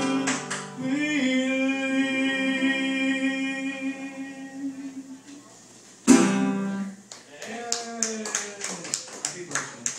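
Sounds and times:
audience applause: 7.2s - 9.9s.

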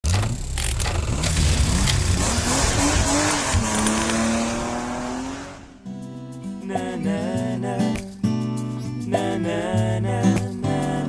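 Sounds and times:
race car engine: 0.0s - 5.8s.

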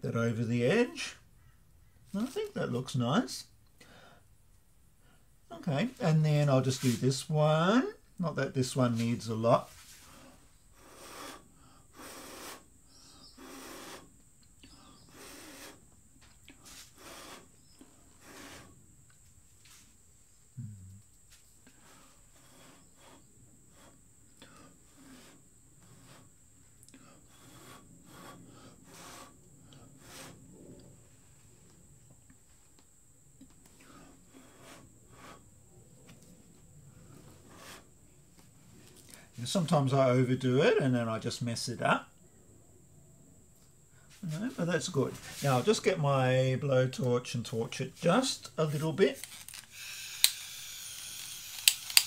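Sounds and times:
puffs of breath blown by mouth: 9.8s - 15.8s, 16.5s - 18.8s.

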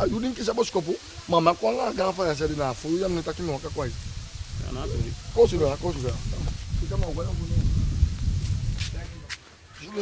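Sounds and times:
man talking: 0.0s - 4.0s.

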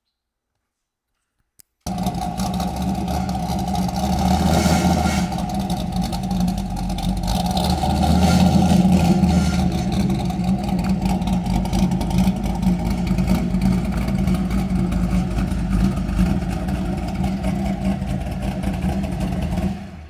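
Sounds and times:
car engine rumbling: 1.9s - 20.0s.

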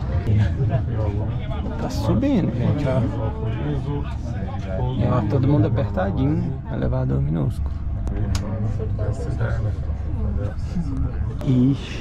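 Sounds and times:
steady low hum: 0.0s - 12.0s
people talking: 0.3s - 12.0s.

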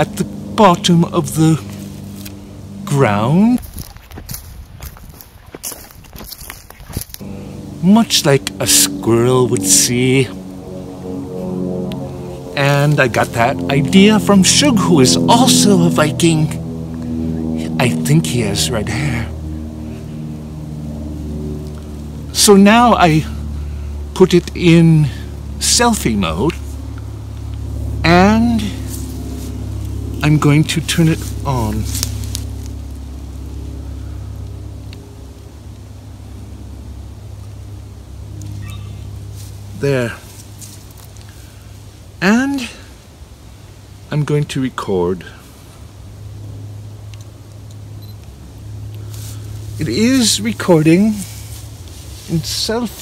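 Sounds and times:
low mechanical hum: 0.0s - 53.0s.

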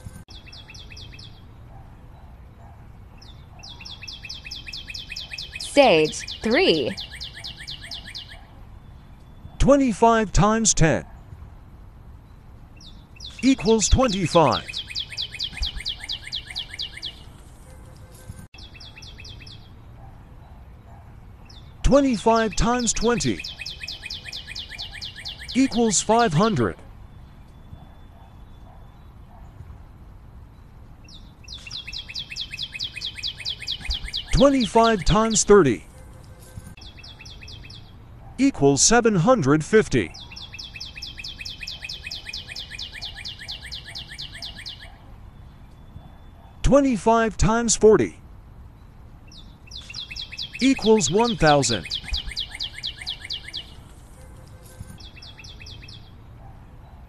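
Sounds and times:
bird chirping: 0.0s - 11.4s, 12.2s - 57.0s.

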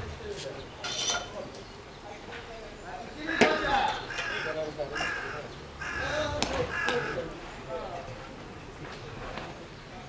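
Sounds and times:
harsh loud calls: 3.0s - 7.4s.

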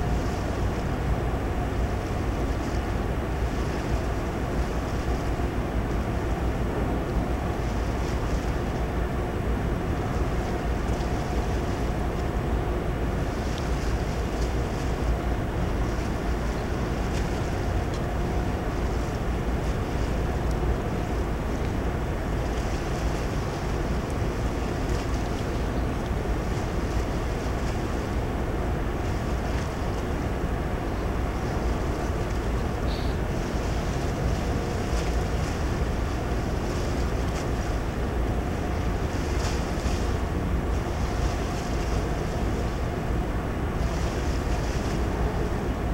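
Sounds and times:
faint machinery hum: 0.0s - 45.9s
wind noise on microphone: 0.0s - 45.9s.

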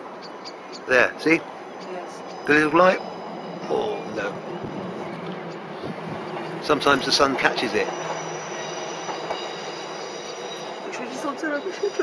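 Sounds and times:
faint high whines: 0.0s - 12.0s
vehicle mechanical noise: 0.0s - 12.0s.

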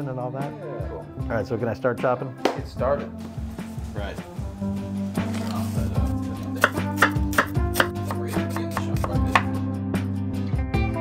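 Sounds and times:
background music: 0.0s - 11.0s
knife chopping on wooden board: 6.6s - 9.6s.

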